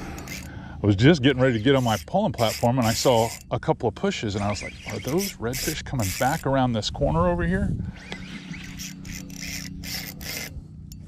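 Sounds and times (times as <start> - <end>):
fishing reel cranking rasp: 0.0 - 0.6, 1.3 - 3.5, 4.4 - 6.6, 7.9 - 11.0.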